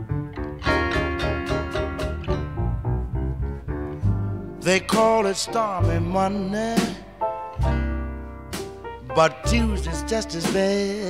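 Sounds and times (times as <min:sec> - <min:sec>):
bass: 0:00.0 - 0:11.0
electric blues guitar fill: 0:00.0 - 0:11.0.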